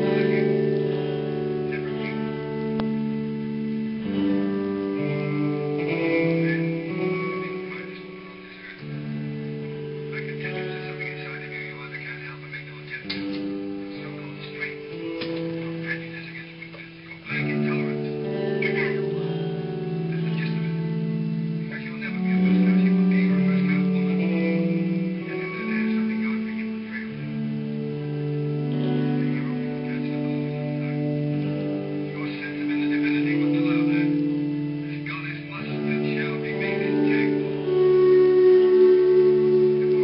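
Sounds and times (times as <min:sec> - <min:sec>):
guitar-led band playing: 0:00.0 - 0:40.0.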